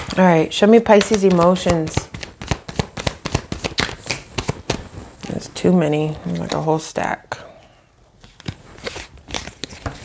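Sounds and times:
cards being shuffled: 0.8 - 5.4, 8.2 - 10.0.

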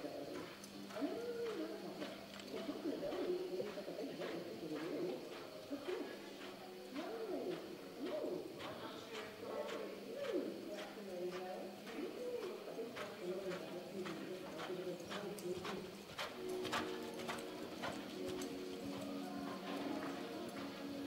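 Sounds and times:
horse hoofbeats in dirt: 0.3 - 21.0.

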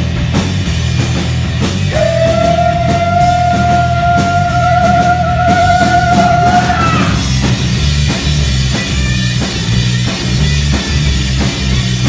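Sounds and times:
rock band playing live: 0.0 - 12.0
singer holding high note: 1.9 - 7.3.

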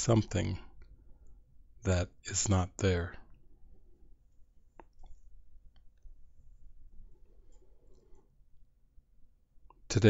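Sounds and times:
faint low background noise: 0.0 - 10.0.

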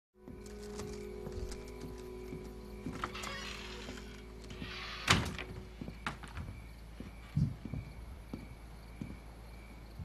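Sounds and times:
soft background music: 0.2 - 10.0.

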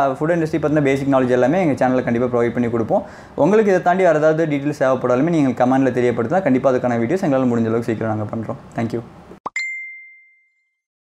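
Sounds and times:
bell-like ding: 9.5 - 10.9.

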